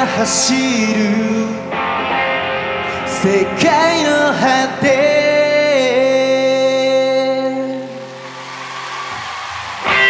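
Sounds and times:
person singing: 0.0 - 1.8, 2.8 - 8.1
electric guitar strum: 0.0 - 5.7.

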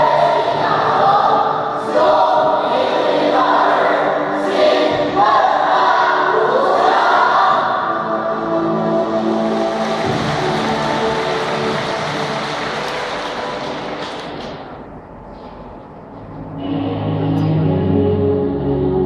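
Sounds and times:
choir singing with backing: 0.0 - 14.4.

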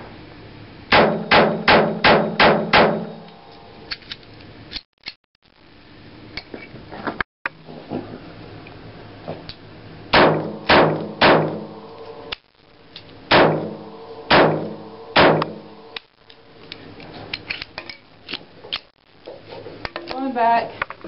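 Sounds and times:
pistol shots with ringing echo: 0.9 - 3.2, 10.1 - 11.7, 13.3 - 15.6.

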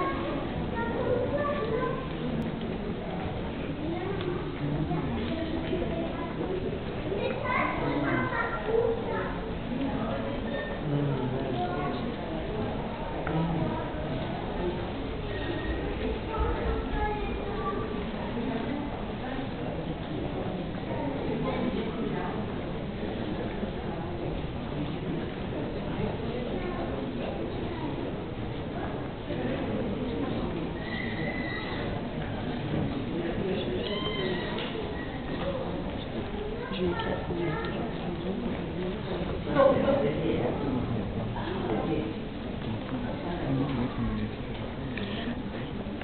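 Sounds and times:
indistinct chatter: 0.0 - 46.0
steady room noise: 0.0 - 46.0
child's high voice: 7.2 - 9.4.

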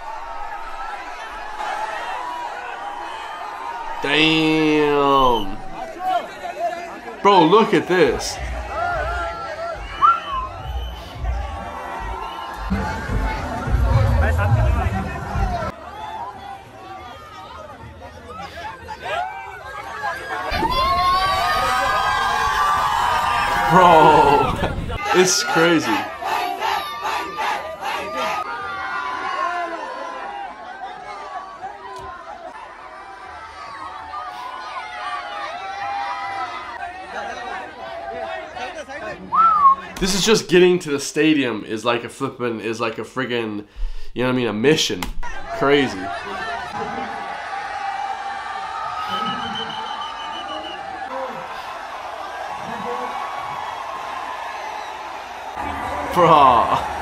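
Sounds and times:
crowd shouting and chanting: 0.0 - 40.2, 45.0 - 57.0.

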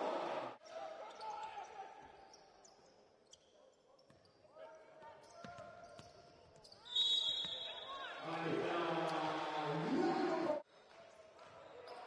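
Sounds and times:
referee's whistle: 6.7 - 8.0
players' voices: 6.8 - 10.6.

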